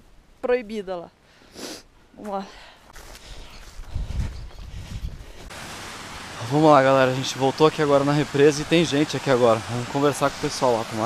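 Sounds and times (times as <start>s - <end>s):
wind buffeting microphone: 3.5s - 6.2s
steady hiss: 5.5s - 11.0s.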